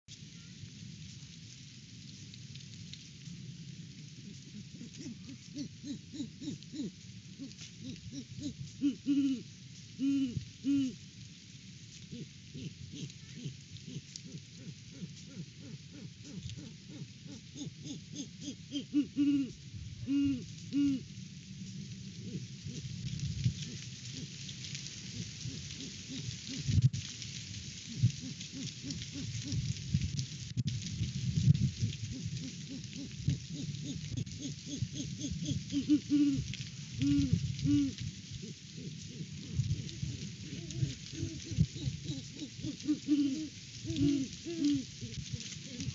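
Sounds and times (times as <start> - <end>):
leaves rustling: 0.1 - 45.9
wind rumbling on microphone: 0.1 - 45.9
owl hooting: 4.2 - 11.0, 12.1 - 21.1, 22.2 - 22.9, 23.6 - 24.4, 25.1 - 26.8, 27.9 - 29.7, 32.1 - 45.9.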